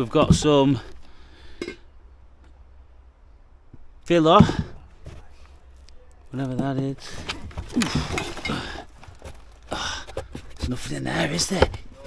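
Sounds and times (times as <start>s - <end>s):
carpeted panel rustling and scraping: 4.3s - 12.0s.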